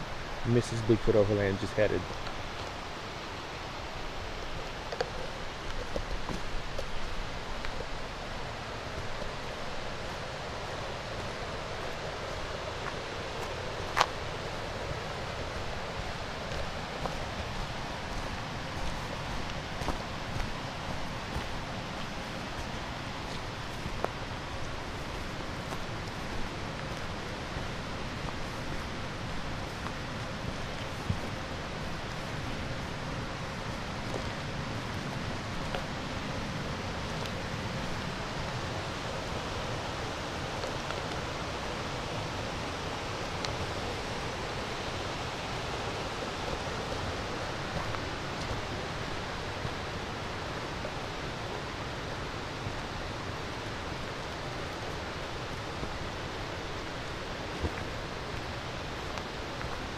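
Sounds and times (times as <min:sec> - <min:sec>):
forest stream rushing: 0:00.0 - 0:59.9.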